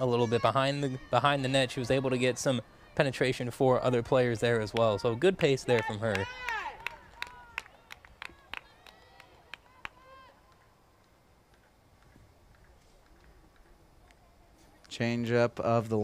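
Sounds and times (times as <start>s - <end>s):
players shouting: 0.0s - 7.6s
faint outdoor hush: 0.0s - 16.0s.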